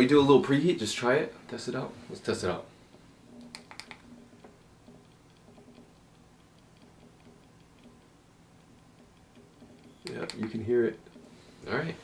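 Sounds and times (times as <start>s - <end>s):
vape cartridge ticking and crackling: 3.3s - 11.3s.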